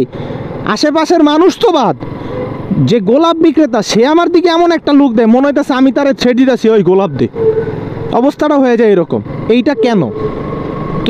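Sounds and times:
motorcycle engine hum: 0.0 - 11.0
road noise: 0.0 - 11.0
man talking: 2.7 - 7.4, 8.1 - 10.2.

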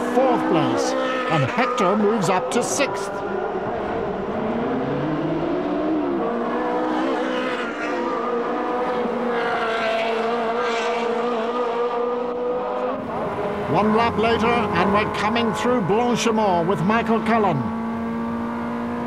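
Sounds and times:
race car engine at speed: 0.0 - 19.0.

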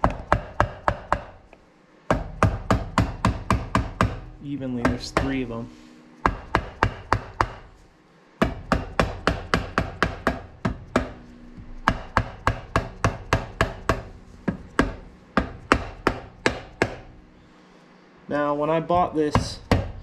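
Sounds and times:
rubber mallet tapping metal: 0.0 - 7.8, 8.4 - 17.2.

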